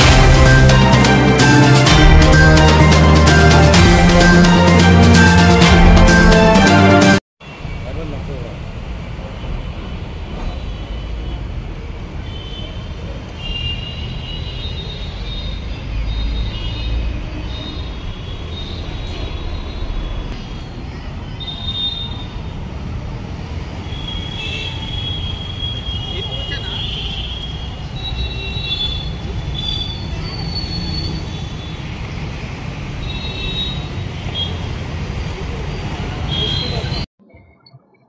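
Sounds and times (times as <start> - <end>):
low rumble of traffic: 7.4 - 37.1.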